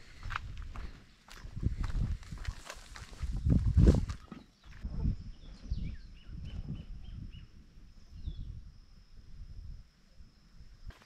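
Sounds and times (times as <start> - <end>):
bird chirping: 4.3 - 8.6.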